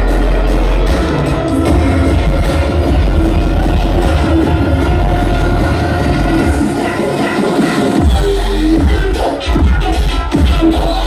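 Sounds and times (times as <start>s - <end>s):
electronic bass music: 0.0s - 11.0s.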